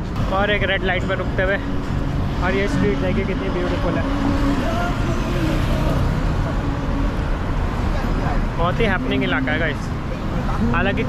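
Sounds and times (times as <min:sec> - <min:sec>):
cars passing close by: 0:00.0 - 0:11.0
faint voices of passers-by: 0:00.0 - 0:11.0.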